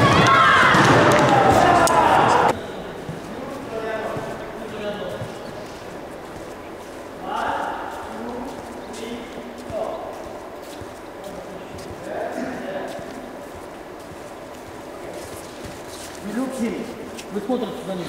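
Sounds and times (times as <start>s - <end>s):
group of people talking: 0.0s - 18.0s.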